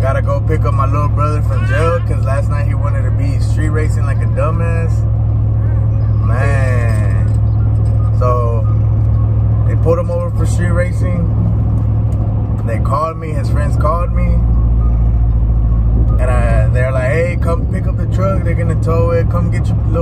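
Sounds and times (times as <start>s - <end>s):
people talking: 0.0s - 5.0s, 5.6s - 7.4s, 8.2s - 8.8s, 9.6s - 11.3s, 12.6s - 14.5s, 16.1s - 20.0s
road and engine drone: 0.0s - 20.0s.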